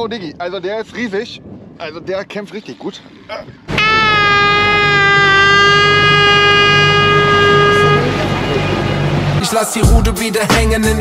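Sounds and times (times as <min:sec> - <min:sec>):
air horn blast: 0:03.7 - 0:09.4.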